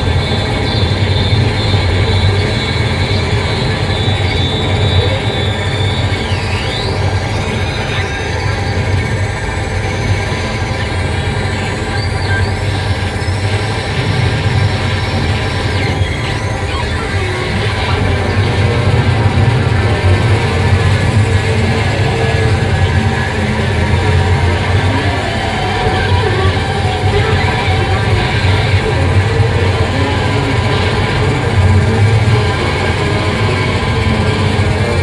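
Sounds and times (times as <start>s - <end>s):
electronic noise music: 0.0s - 35.0s
heavy low rumble: 0.0s - 35.0s.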